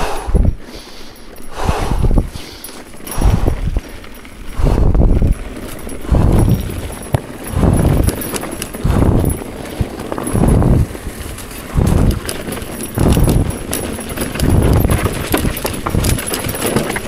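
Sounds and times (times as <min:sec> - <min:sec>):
low rushing puffs: 0:00.0 - 0:03.8, 0:04.5 - 0:05.4, 0:06.0 - 0:10.9
mountain bike rattling and clicking: 0:00.0 - 0:17.0.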